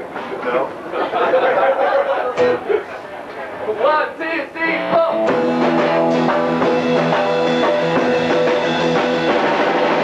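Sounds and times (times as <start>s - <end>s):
people talking and laughing: 0.2s - 4.0s
electric guitar sustained note: 4.7s - 7.6s.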